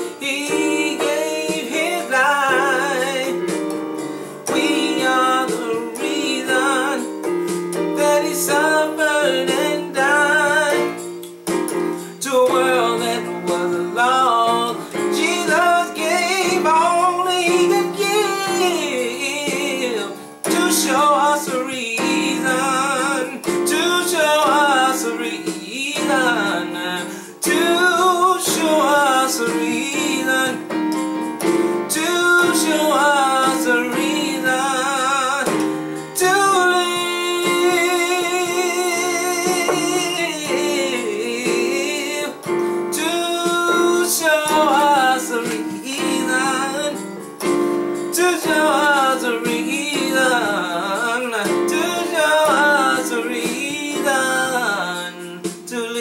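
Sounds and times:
electronic keyboard chords: 0:00.0 - 0:56.0
man singing with vibrato: 0:00.0 - 0:56.0.

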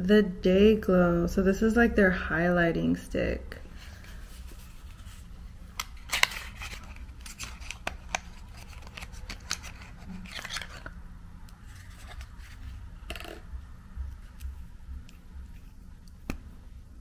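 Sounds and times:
papery scraping: 0:03.7 - 0:10.9, 0:11.6 - 0:12.8.

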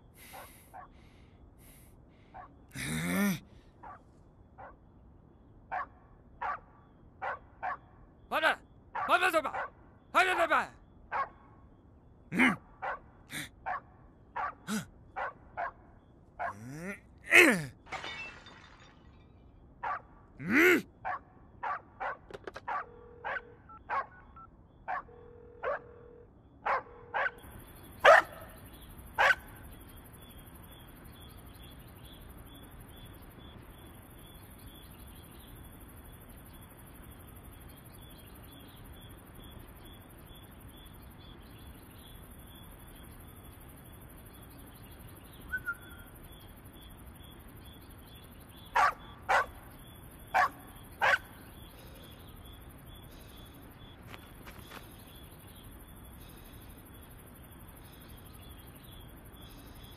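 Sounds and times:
night insects chirring: 0:00.0 - 0:59.9
dog barking: 0:00.3 - 0:01.0, 0:03.8 - 0:04.0, 0:04.6 - 0:04.8, 0:05.7 - 0:07.9, 0:09.0 - 0:09.8, 0:11.1 - 0:11.5, 0:12.4 - 0:17.0, 0:19.8 - 0:27.4, 0:28.0 - 0:28.6, 0:29.2 - 0:29.5, 0:48.7 - 0:49.6, 0:50.3 - 0:51.4.

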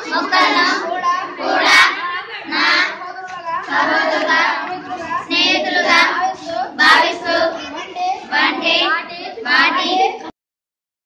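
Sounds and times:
children singing: 0:00.0 - 0:10.3.

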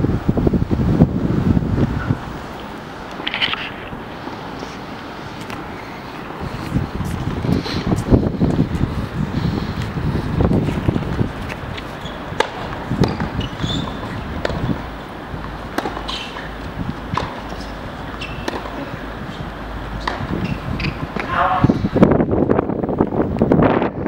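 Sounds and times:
wind noise on microphone: 0:00.0 - 0:24.0
tennis ball bounces: 0:10.9 - 0:21.5
tennis racket strikes: 0:12.4 - 0:14.8, 0:15.7 - 0:19.0.

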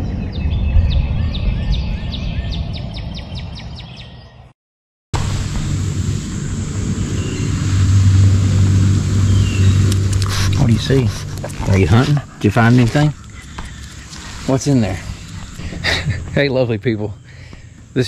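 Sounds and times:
bird chirping: 0:00.0 - 0:04.5, 0:07.0 - 0:07.9, 0:09.1 - 0:18.0
low hum: 0:05.2 - 0:18.0.

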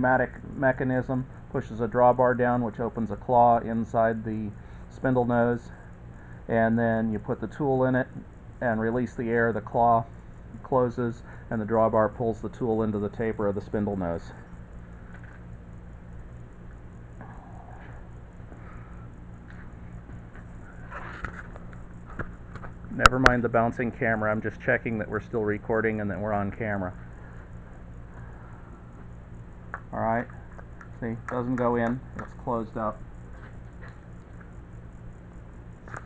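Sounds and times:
steady low hum: 0:00.0 - 0:36.0.

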